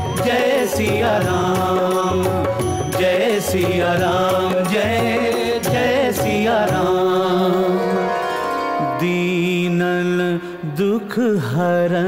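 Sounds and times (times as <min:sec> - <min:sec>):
devotional music with gliding melody: 0:00.0 - 0:12.0.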